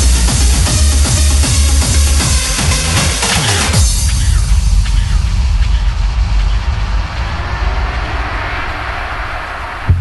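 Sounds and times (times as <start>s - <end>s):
wind-like rushing noise: 6.0s - 10.0s.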